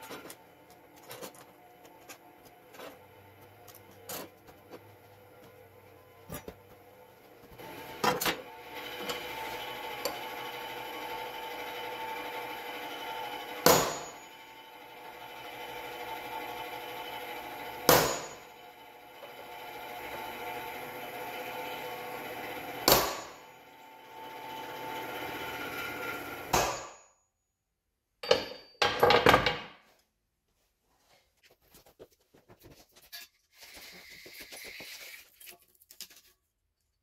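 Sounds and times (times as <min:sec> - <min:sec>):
hammer striking metal punch: 0:13.6 - 0:14.2, 0:17.9 - 0:18.4, 0:22.9 - 0:23.4, 0:26.5 - 0:27.1, 0:28.2 - 0:29.5.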